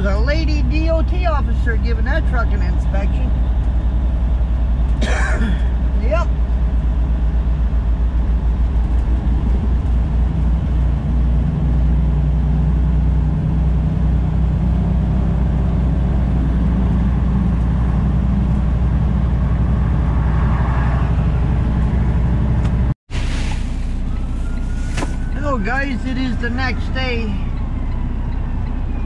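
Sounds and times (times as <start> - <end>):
truck diesel engine drone: 0.0 - 29.0.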